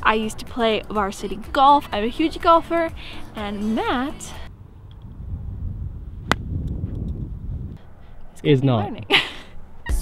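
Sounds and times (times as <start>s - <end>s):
low outdoor rumble: 0.0s - 10.0s
golf club striking ball: 6.2s - 6.8s.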